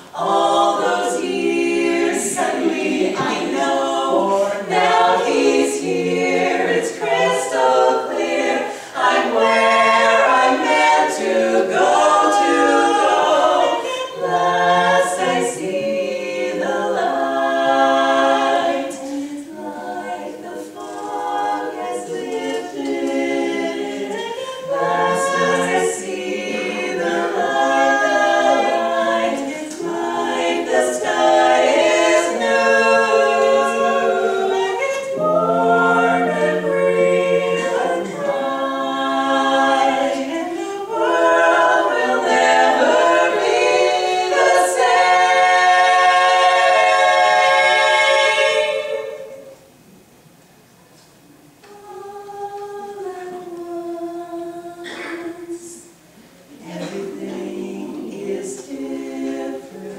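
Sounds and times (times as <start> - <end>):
women singing a cappella harmony: 0.0 - 49.7, 51.6 - 59.9.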